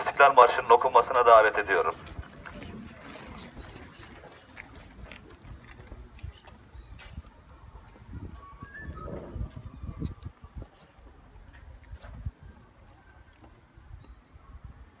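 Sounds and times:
wind rumbling on microphone: 1.9 - 15.0.

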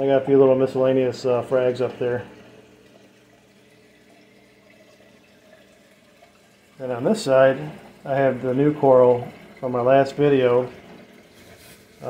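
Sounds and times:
faint steady hum: 0.0 - 12.0
water trickling in aquarium: 0.0 - 12.0.

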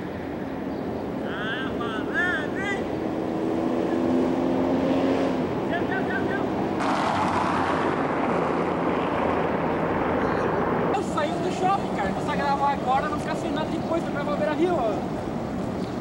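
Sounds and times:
steady rushing noise: 0.0 - 16.0.

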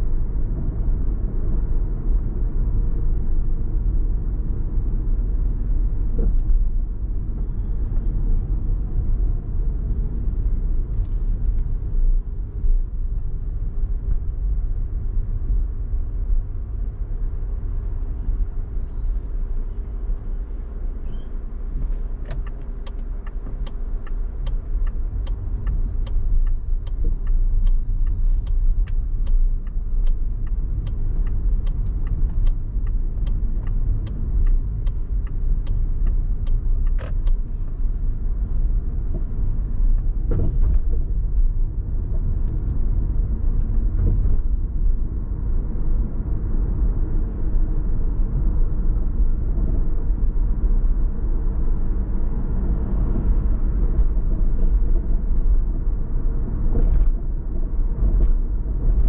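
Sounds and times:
car road and tyre rumble: 0.0 - 59.0
turn signal ticking: 21.6 - 39.3.

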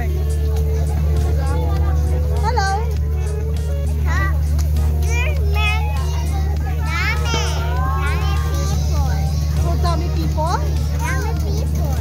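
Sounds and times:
crowd chatter: 0.0 - 12.0
children's high-pitched voices: 3.9 - 12.0.

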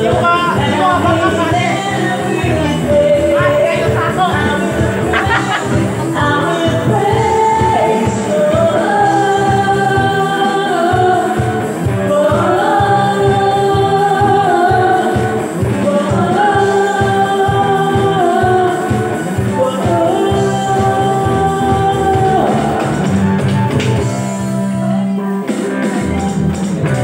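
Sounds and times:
drums with steady beat: 0.0 - 27.0
electric bass: 0.0 - 27.0
keyboard: 0.0 - 27.0
person singing: 0.0 - 27.0.

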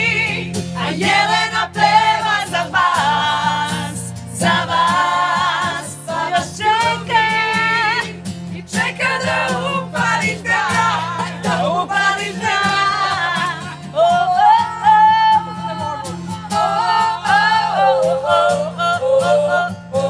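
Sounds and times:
strummed acoustic guitar: 0.0 - 20.0
woman singing: 0.0 - 20.0.

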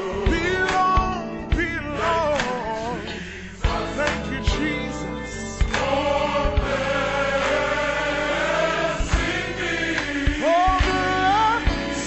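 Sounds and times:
bass line: 0.0 - 12.0
choir holding long notes: 5.8 - 12.0.

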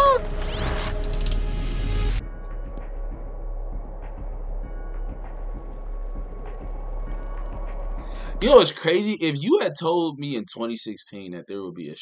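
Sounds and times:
deep rumble: 0.0 - 8.4.

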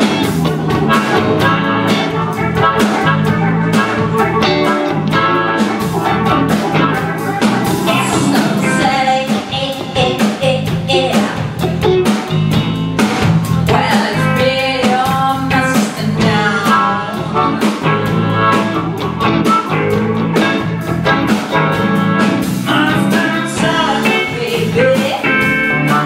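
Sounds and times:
drum kit: 0.0 - 26.0
electric guitars: 0.0 - 26.0
woman singing: 7.7 - 11.7, 13.6 - 18.8, 22.6 - 25.6.

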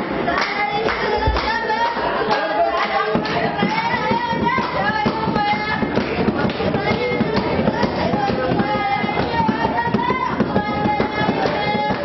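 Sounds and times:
voices singing unaccompanied: 0.0 - 12.0
sharp hand claps: 0.4 - 1.6, 2.3 - 12.0.

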